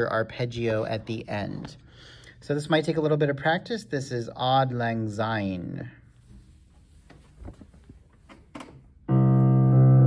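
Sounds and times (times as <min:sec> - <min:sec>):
faint knocks and rustles: 0:06.2 - 0:08.9.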